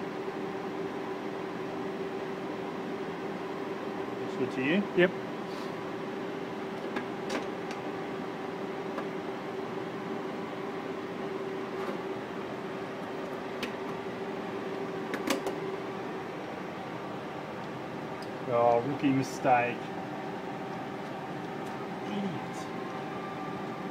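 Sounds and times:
projector machinery humming: 0:00.0 - 0:23.9.

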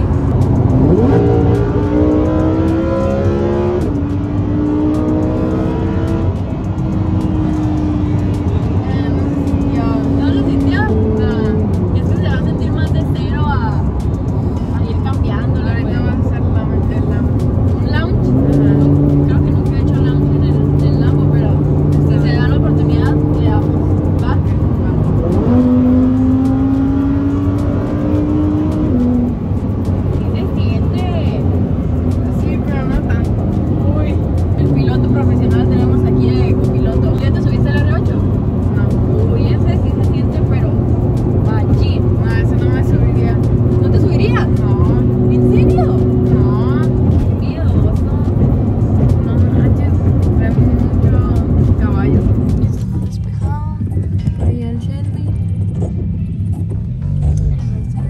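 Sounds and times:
car engine revving: 0:00.0 - 0:58.0.

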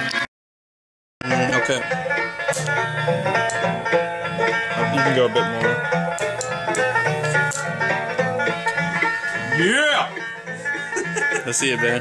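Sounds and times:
plucked banjo music: 0:01.2 - 0:12.0.

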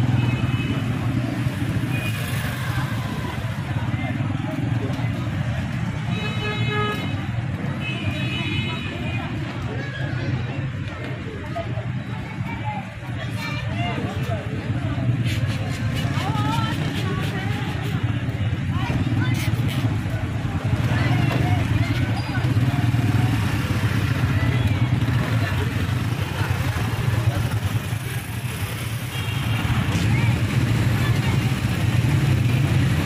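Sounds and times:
traffic engines rumbling: 0:00.0 - 0:33.0
people talking: 0:00.6 - 0:33.0.

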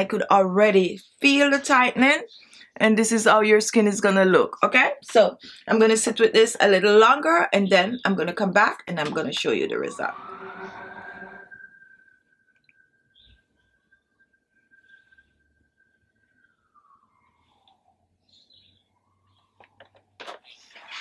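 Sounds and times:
rising pitched tone: 0:09.2 - 0:18.2
faint high tone gliding downward: 0:09.4 - 0:19.6.

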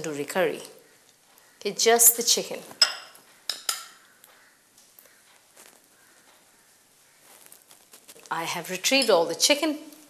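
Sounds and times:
faint handling noises: 0:04.3 - 0:08.5.

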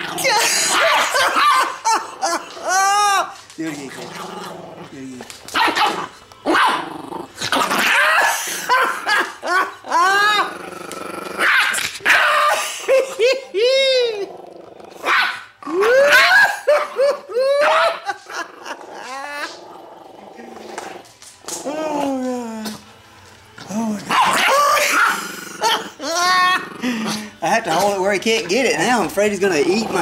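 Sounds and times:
small dog growling and snarling: 0:00.0 - 0:01.3, 0:03.6 - 0:05.3, 0:05.9 - 0:08.8, 0:10.0 - 0:12.1, 0:18.4 - 0:22.9, 0:23.6 - 0:28.6, 0:29.5 - 0:30.0
high-pitched dog barks and yips: 0:00.7 - 0:01.7, 0:05.5 - 0:06.8, 0:11.4 - 0:12.6, 0:15.0 - 0:15.4.

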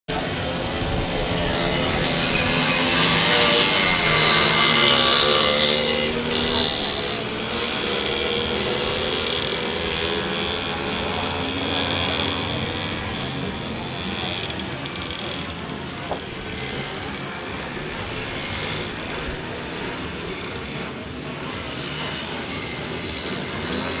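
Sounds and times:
moped engines revving: 0:00.1 - 0:24.0.

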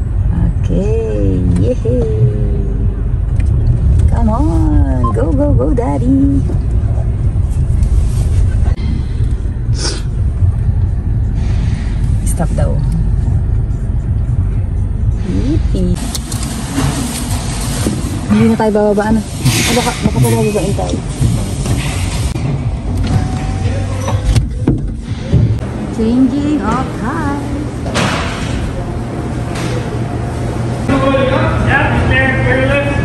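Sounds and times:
car engine rumble inside cabin: 0:00.0 - 0:27.9.

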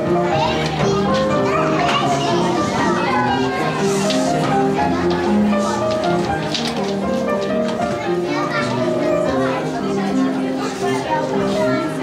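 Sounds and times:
background music with held notes: 0:00.0 - 0:12.0
children calling and chattering: 0:00.0 - 0:12.0.

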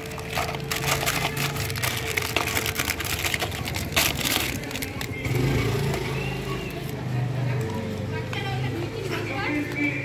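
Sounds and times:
dry biscuits snapping and crackling: 0:00.0 - 0:05.4.

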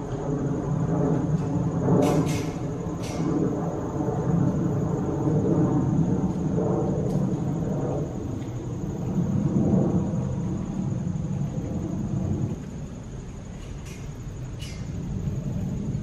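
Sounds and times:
high drone of insects: 0:00.0 - 0:16.0
low steady rumble: 0:00.0 - 0:16.0.

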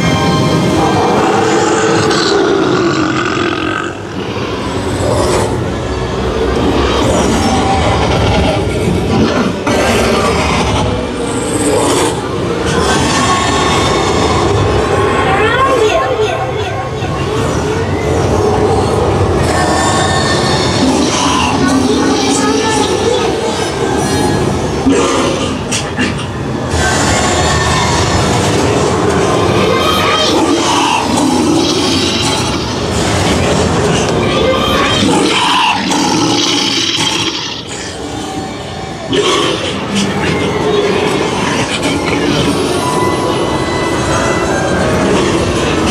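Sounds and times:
continuous rumbling: 0:00.0 - 0:45.9
dense wash of noise: 0:00.0 - 0:45.9
gliding shrieking tones: 0:00.0 - 0:45.9
voices: 0:00.0 - 0:45.9.

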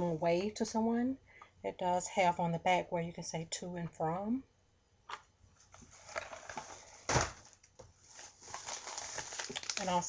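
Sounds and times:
candy box handling noises: 0:05.7 - 0:10.0.

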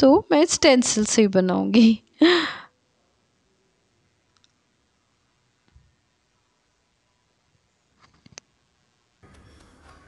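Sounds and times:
woman laughing breathily: 0:01.8 - 0:02.7.

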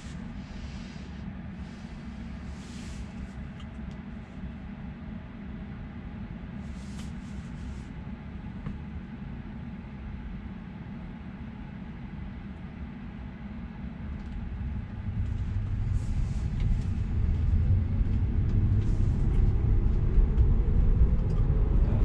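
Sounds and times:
road and tyre noise in car: 0:00.0 - 0:05.2, 0:06.2 - 0:08.9, 0:14.0 - 0:22.0
faint rising whine: 0:14.0 - 0:22.0.

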